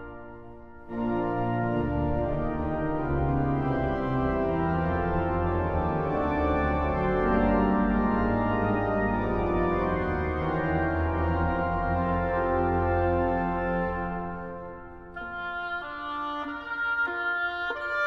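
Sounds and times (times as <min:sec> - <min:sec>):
organ playing sustained chords: 0:00.0 - 0:18.0.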